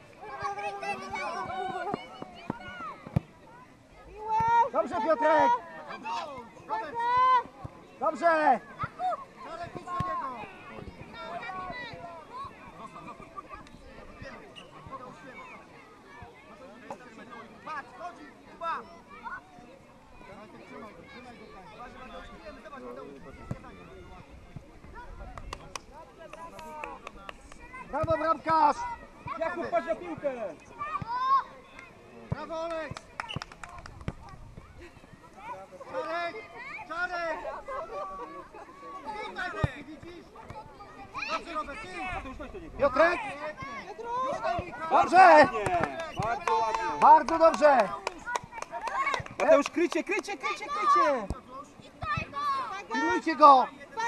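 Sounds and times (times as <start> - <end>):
distant voices of children and adults: 0.0 - 54.0.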